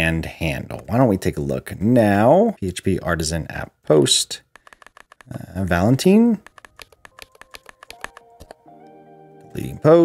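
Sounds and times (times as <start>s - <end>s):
keyboard keys tapping: 4.5s - 5.6s, 6.2s - 8.7s
soft background music: 5.8s - 10.0s.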